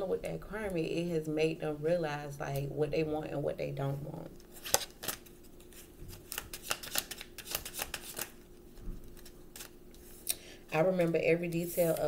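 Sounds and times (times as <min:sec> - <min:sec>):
cards being shuffled: 0:04.5 - 0:10.2.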